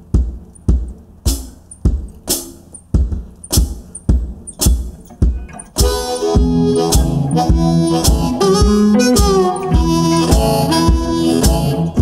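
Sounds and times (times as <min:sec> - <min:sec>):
kick drum: 0:00.0 - 0:11.6
faint electric guitar: 0:05.1 - 0:12.0.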